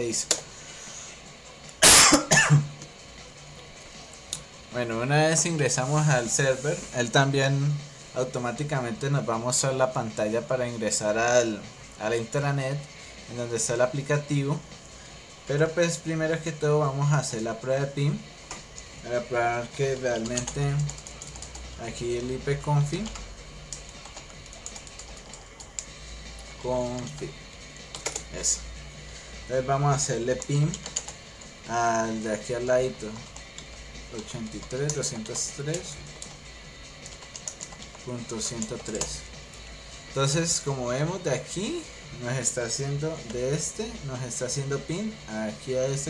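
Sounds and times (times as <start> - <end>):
low steady hum: 0.0 - 46.0
man coughing: 1.8 - 2.7.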